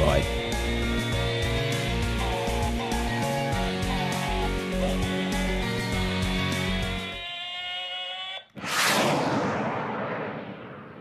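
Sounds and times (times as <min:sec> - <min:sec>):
whoosh sound effect: 0:08.6 - 0:11.0.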